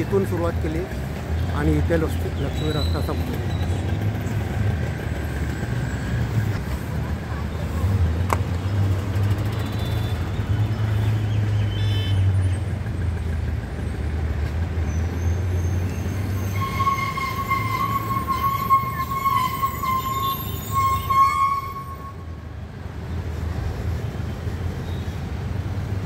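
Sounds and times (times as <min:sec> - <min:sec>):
traffic rumble: 0:00.0 - 0:26.0
horn toot: 0:16.4 - 0:22.3.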